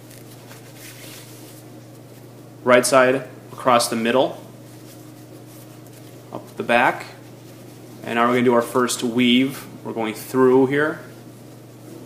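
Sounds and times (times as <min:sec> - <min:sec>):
necktie rustling: 0:00.0 - 0:02.3, 0:04.6 - 0:08.4.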